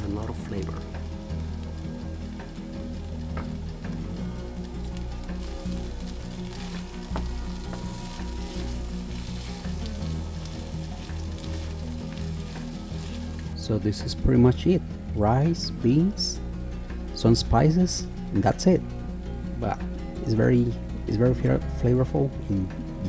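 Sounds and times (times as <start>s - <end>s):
food sizzling in skillet: 0.0s - 13.6s.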